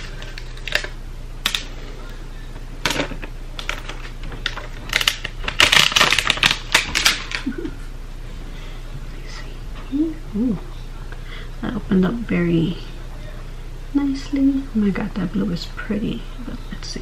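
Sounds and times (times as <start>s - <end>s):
packaging crackling and tearing: 0.0s - 1.6s, 3.6s - 7.5s.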